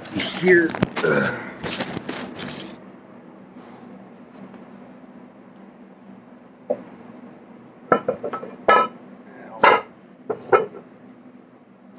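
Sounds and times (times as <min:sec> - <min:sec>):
faint steady hum: 0:00.0 - 0:11.9.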